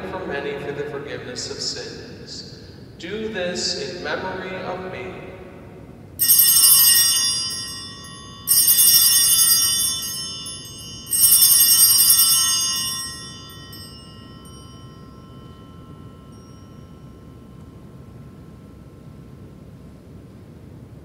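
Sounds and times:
altar bells ringing: 6.2 - 20.1.

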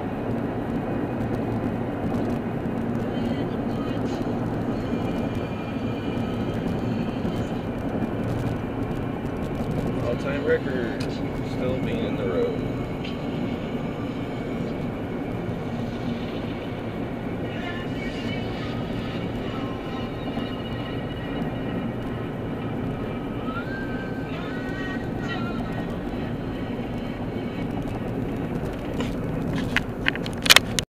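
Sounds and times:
car road and engine noise: 0.0 - 30.9.

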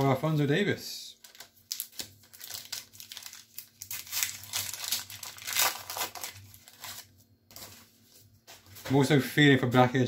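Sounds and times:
foil wrapper crinkling: 1.2 - 7.9.

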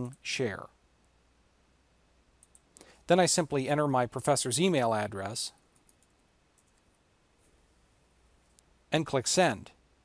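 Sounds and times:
computer mouse click: 2.4 - 2.9, 5.7 - 6.9.

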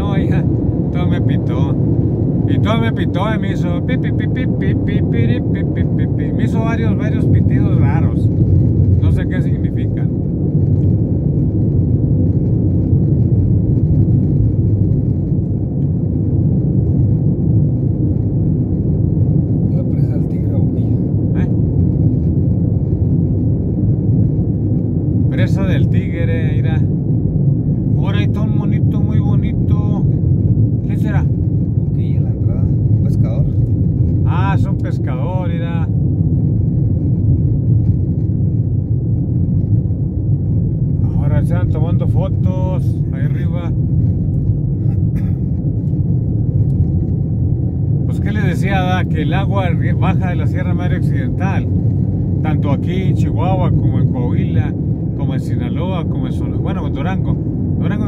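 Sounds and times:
road and engine rumble in cabin: 0.0 - 58.0.

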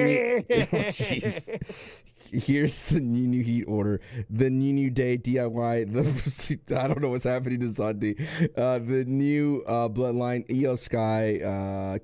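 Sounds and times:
man laughing: 0.0 - 2.8.

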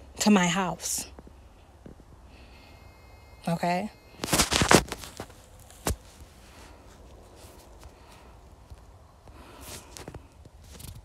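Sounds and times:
rustling: 4.2 - 11.0.

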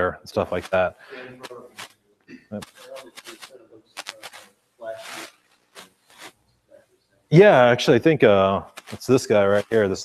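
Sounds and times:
zipper-like scrape: 2.6 - 6.4.

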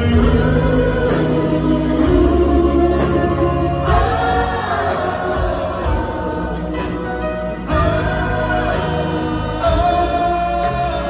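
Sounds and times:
crowd singing: 0.0 - 11.0
live band music: 0.0 - 11.0.

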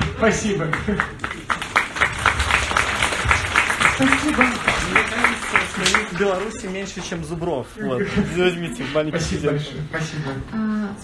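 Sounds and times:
audience clapping: 0.2 - 7.3.

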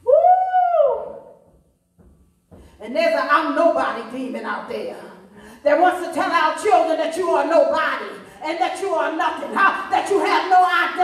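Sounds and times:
woman's wordless cry: 0.0 - 1.3.

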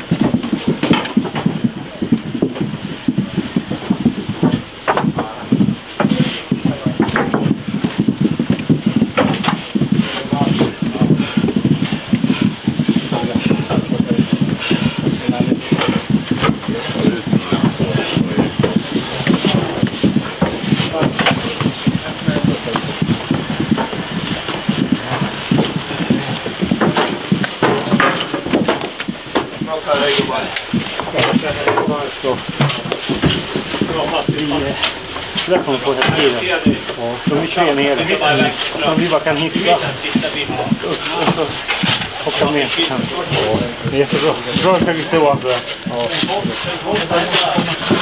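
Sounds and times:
many voices talking: 0.0 - 48.0
sharp clacks and knocks: 0.0 - 48.0.

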